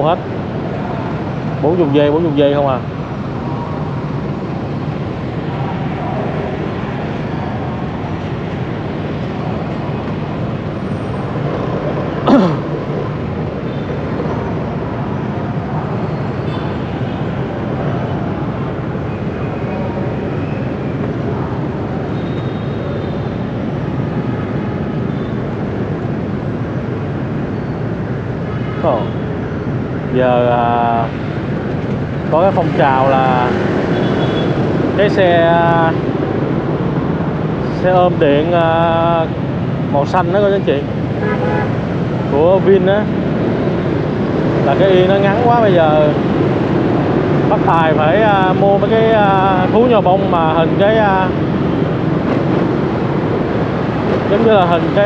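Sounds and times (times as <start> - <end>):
motorbike traffic rumble: 0.0 - 55.0.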